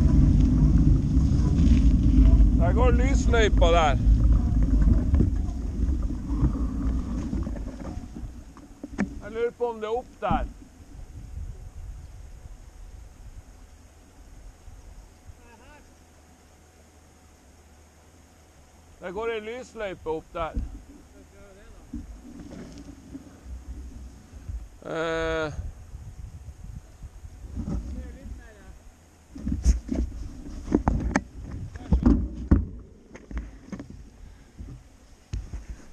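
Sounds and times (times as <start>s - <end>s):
tyres rolling on dirt road: 0.0s - 10.8s
wind rumbling on microphone: 0.0s - 15.5s, 19.8s - 35.9s.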